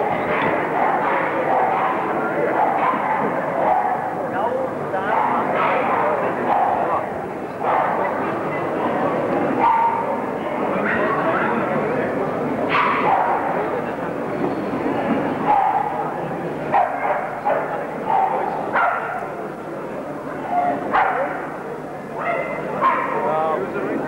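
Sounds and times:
murmur of crowd chatter: 0:00.0 - 0:24.0
dogs barking and yelping: 0:00.1 - 0:04.2, 0:15.4 - 0:16.0, 0:16.7 - 0:19.2.

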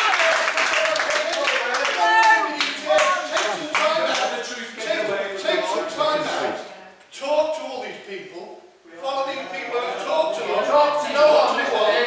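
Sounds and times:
people clapping: 0:00.0 - 0:05.5
man speaking: 0:00.8 - 0:12.0.

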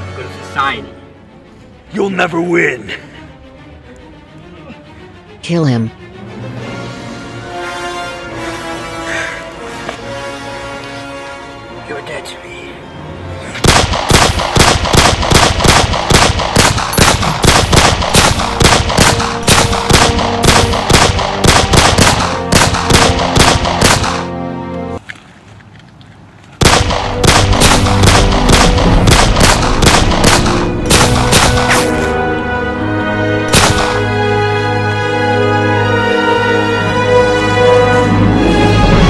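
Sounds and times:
rapid gunshots: 0:13.6 - 0:24.3, 0:26.6 - 0:31.9, 0:33.5 - 0:34.0.

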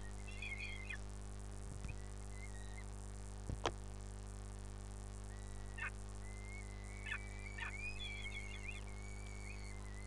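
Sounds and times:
bird chirps: 0:00.0 - 0:01.0, 0:01.8 - 0:02.9, 0:05.3 - 0:10.0
wavering bird whistle and warbling: 0:00.0 - 0:01.0, 0:01.8 - 0:02.9, 0:05.3 - 0:10.0
steady low hum: 0:00.0 - 0:10.0.

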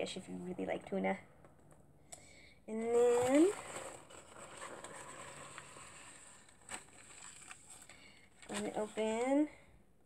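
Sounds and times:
soft handling rustling: 0:02.8 - 0:09.6.

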